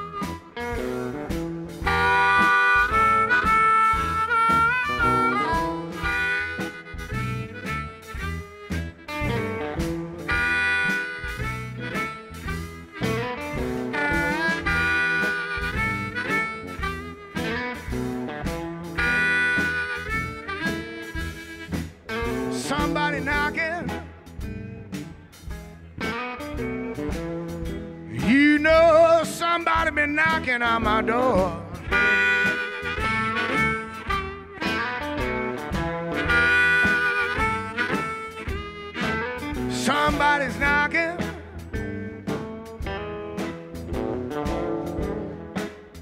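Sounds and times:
amplified harmonica: 0:00.0 - 0:46.0
electric blues band playing: 0:00.0 - 0:46.0.

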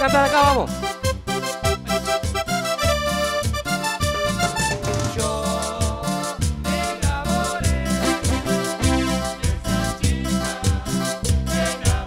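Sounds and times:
live band playing keyboards: 0:00.0 - 0:11.8
bass and percussion beat: 0:00.0 - 0:12.0.

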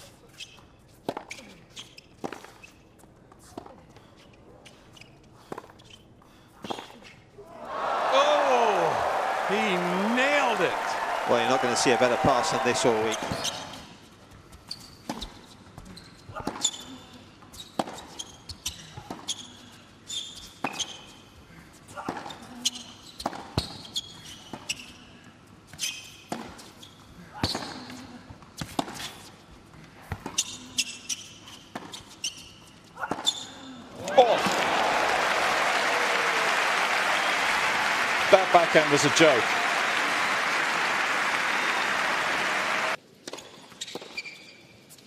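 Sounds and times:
crowd applause and cheering: 0:07.5 - 0:13.7, 0:34.0 - 0:43.0.

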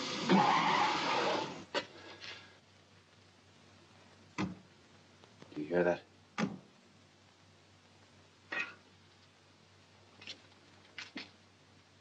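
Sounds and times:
film soundtrack hiss and hum: 0:00.0 - 0:12.0.

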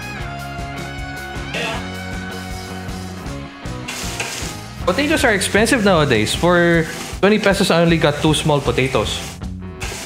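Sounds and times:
background music: 0:00.0 - 0:10.0
vegetables sizzling in oil: 0:03.8 - 0:04.6
spatula stirring in a pan: 0:06.6 - 0:07.3.

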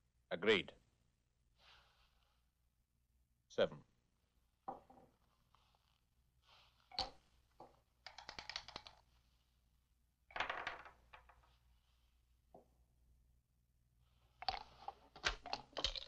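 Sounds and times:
dice clattering on wooden table: 0:06.9 - 0:09.1, 0:10.3 - 0:11.6, 0:14.4 - 0:16.0
dice rattling in a cup: 0:08.0 - 0:09.0, 0:10.3 - 0:11.5, 0:14.4 - 0:16.0.

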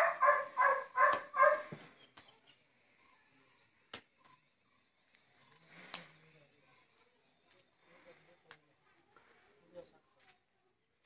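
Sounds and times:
dog barking sharply: 0:00.0 - 0:01.7.

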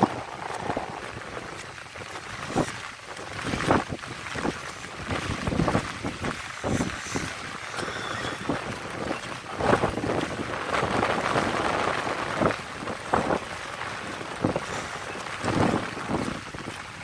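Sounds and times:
water sloshing and splashing: 0:00.0 - 0:17.0
wind buffeting microphone: 0:00.0 - 0:17.0.

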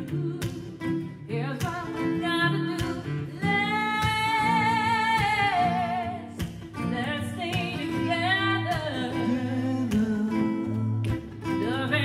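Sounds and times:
strummed acoustic guitar: 0:00.0 - 0:12.0
woman and man singing: 0:00.0 - 0:12.0.

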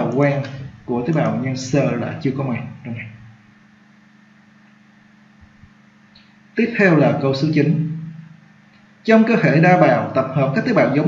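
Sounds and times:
man speaking: 0:00.0 - 0:03.2, 0:06.6 - 0:07.9, 0:09.1 - 0:11.0
low hum: 0:00.0 - 0:11.0.

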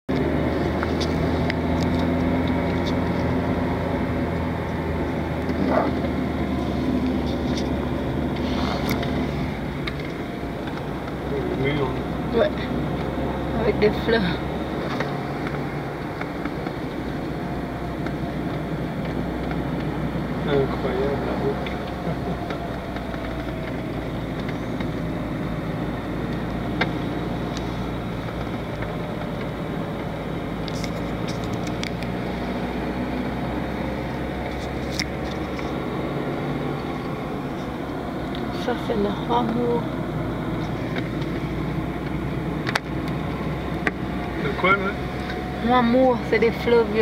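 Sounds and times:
car engine and tyre rumble: 0:00.0 - 0:47.0.

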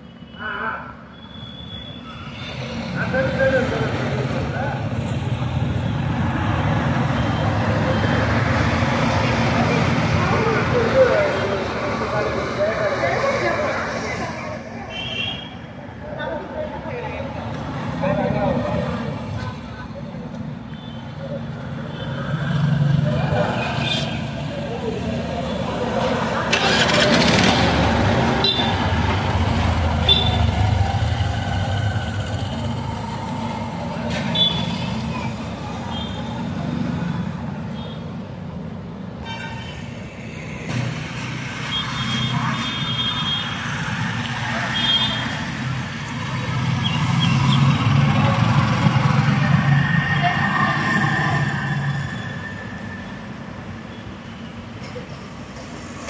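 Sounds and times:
road traffic rumble: 0:00.0 - 0:56.0
vehicle passing: 0:22.2 - 0:35.8.

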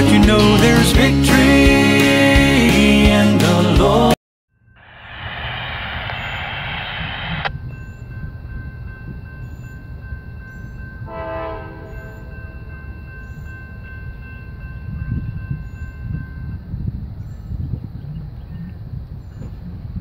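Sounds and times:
distant locomotive horn blasts: 0:11.0 - 0:12.9.

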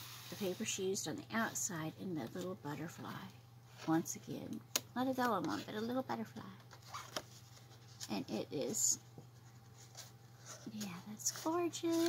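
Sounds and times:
low steady hum: 0:00.0 - 0:12.0
paper card rustling: 0:06.6 - 0:08.2, 0:09.4 - 0:12.0.

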